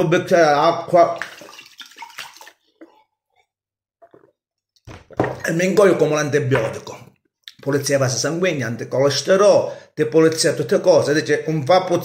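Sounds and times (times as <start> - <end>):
water pouring into a mug: 1.0 - 3.0.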